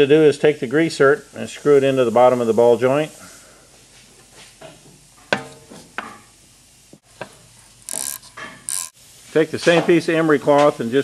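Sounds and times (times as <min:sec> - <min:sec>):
metal scrape: 0:07.6 - 0:09.0
wrench clicking on metal: 0:07.9 - 0:09.0.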